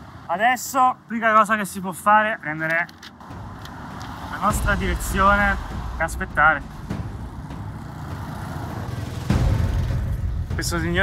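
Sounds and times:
cars passing: 0.0 - 11.0
motorbike passing: 3.2 - 10.6.

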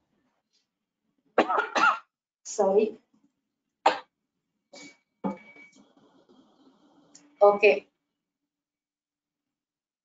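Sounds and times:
woman coughing: 1.4 - 2.1.

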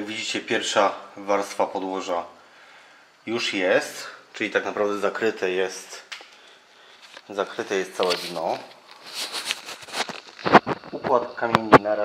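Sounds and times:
rustling handling noise: 6.8 - 11.1.

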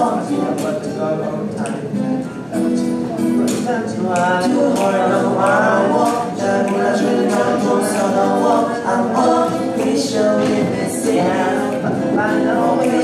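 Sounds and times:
held accompaniment: 0.0 - 13.0
person singing: 2.6 - 13.0.

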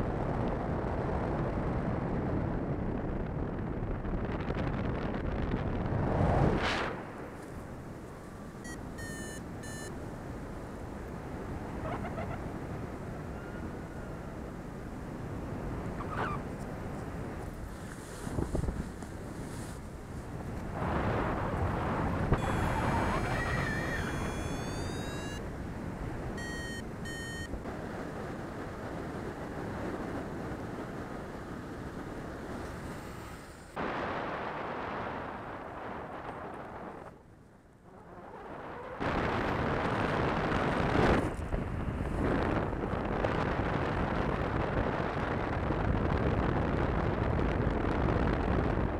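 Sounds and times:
wind rushing over microphone: 0.0 - 48.9
electronic beeping: 8.6 - 9.9, 22.4 - 25.4, 26.4 - 27.5.

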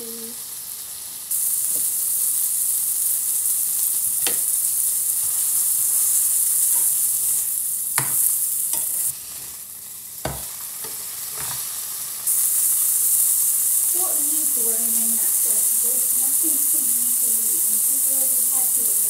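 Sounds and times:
burger patties sizzling in a pan: 0.0 - 19.0
spatula tapping and scraping pan: 4.2 - 4.5, 6.6 - 7.0, 8.0 - 9.1, 10.2 - 11.7.

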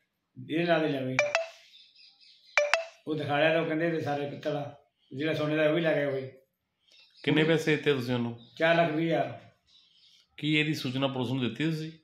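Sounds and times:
ringing double clinks: 1.2 - 1.6, 2.6 - 3.0
man speaking: 7.2 - 9.4, 10.4 - 12.0.

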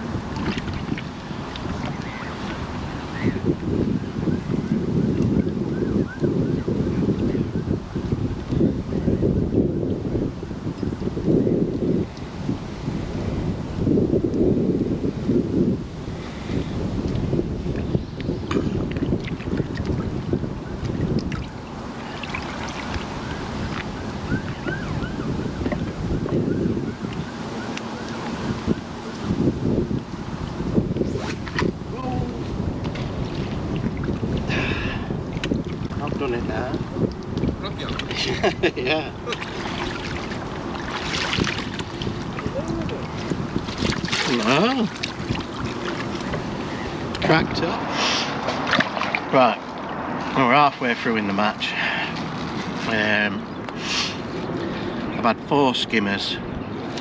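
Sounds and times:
choppy water lapping: 0.0 - 13.9, 15.2 - 53.3
wind buffeting microphone: 0.0 - 57.0.

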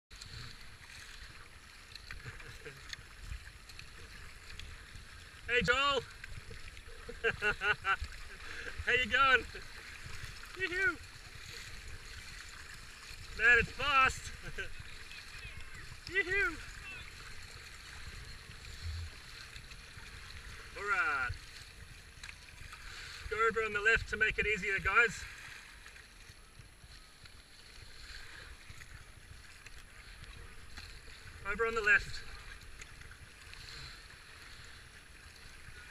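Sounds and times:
water splashing around paddle: 0.1 - 35.9
small splashes: 0.2 - 23.4
wind rumble on microphone: 17.2 - 20.6
low rumble: 18.5 - 19.6.

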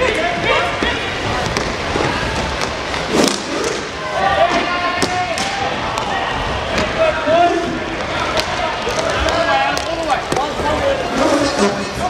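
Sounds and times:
sticks and puck clacking: 0.8 - 3.9, 8.0 - 12.0.

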